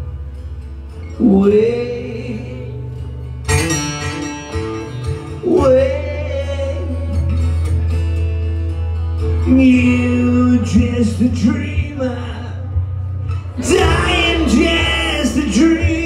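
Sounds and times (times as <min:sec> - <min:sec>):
acoustic guitar: 0:00.0 - 0:16.0
man singing long held notes: 0:13.6 - 0:16.0.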